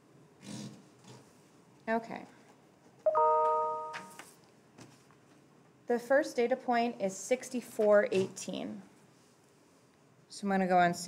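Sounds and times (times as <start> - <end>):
bell-like chime: 3.1 - 4.2.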